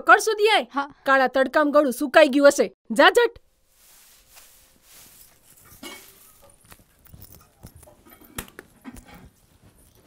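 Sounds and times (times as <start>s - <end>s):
broom sweeping a floor: 3.5s - 6.6s
metal water vessels clinking: 5.6s - 6.6s.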